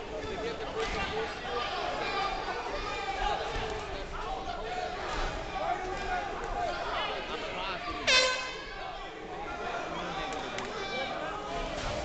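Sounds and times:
crowd voices: 0:00.0 - 0:12.0
loud horn blast: 0:08.1 - 0:08.6.

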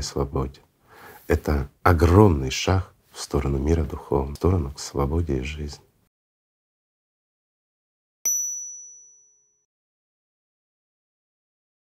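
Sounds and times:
bright bell-like ding: 0:08.3 - 0:09.6.

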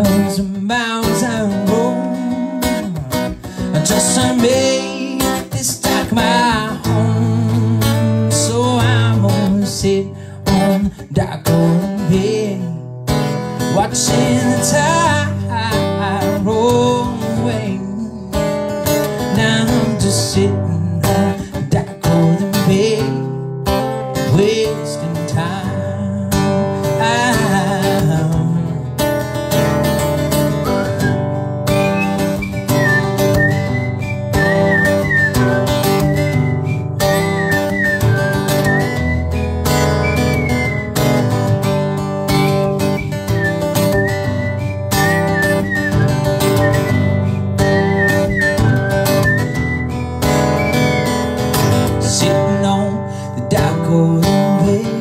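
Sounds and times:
acoustic guitar strumming: 0:00.0 - 0:55.0
high whistled tune: 0:30.3 - 0:41.6, 0:42.3 - 0:51.9.

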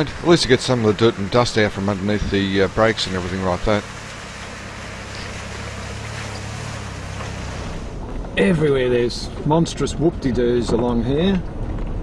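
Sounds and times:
water splashing around wheels: 0:00.0 - 0:08.1
vehicle engine running: 0:00.0 - 0:09.5.

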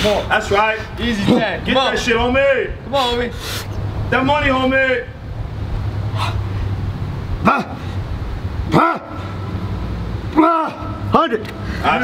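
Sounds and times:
dog barking: 0:07.4 - 0:07.9.

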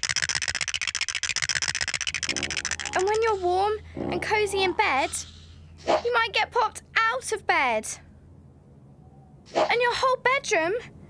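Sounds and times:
cartoon teeth chattering: 0:00.0 - 0:06.2.

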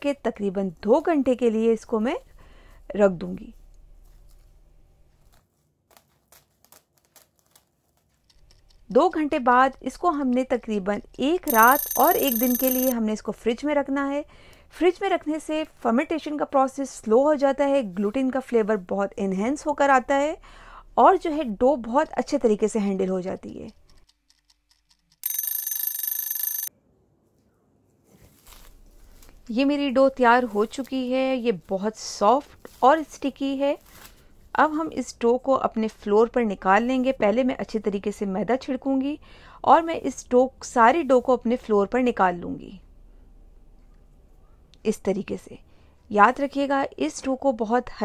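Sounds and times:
woman speaking: 0:00.0 - 0:02.3, 0:02.9 - 0:03.6, 0:44.8 - 0:48.0
cling film crinkling: 0:05.2 - 0:08.3
timer alarm bell ringing: 0:11.5 - 0:12.9, 0:25.2 - 0:26.7.

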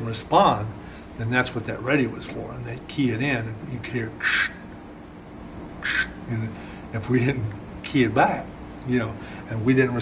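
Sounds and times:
man imitating radio squelch hiss: 0:04.1 - 0:04.7, 0:05.8 - 0:06.6.

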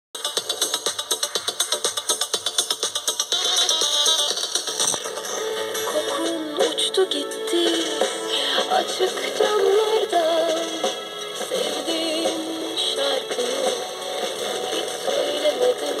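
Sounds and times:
music with singing voice on radio: 0:00.2 - 0:16.0.

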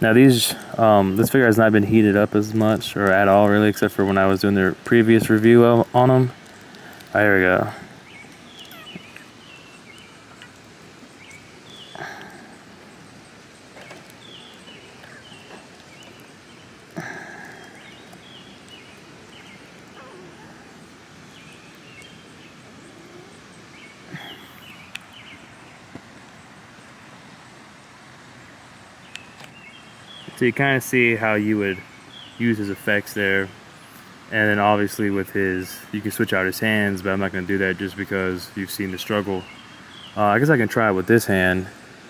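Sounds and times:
birds chirping: 0:00.0 - 0:42.0
outdoor background noise: 0:00.0 - 0:42.0.

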